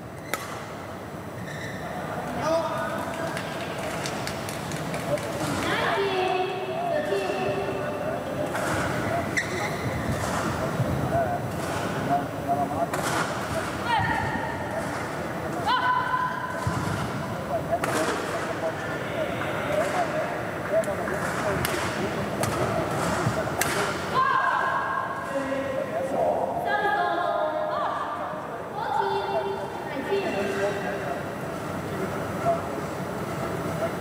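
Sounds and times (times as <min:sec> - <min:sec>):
shoes squeaking: 0:01.4 - 0:02.1, 0:08.6 - 0:10.7.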